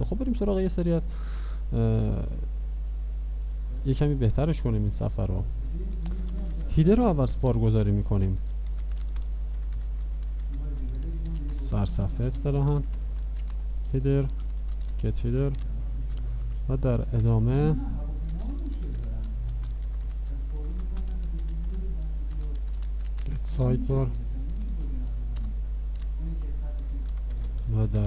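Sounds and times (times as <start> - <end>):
steady low hum: 0.0 - 28.0
keyboard typing: 5.7 - 28.0.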